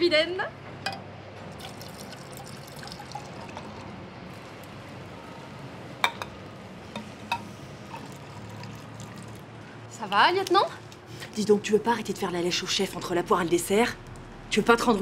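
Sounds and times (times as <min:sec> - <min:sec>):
low background hum: 0:00.0 - 0:15.0
liquid pouring from glass bottle: 0:01.6 - 0:04.0, 0:07.9 - 0:09.5.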